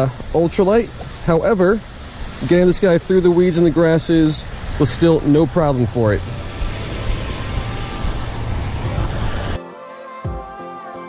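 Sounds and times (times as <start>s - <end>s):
wind rumble and hiss: 0.0s - 9.6s.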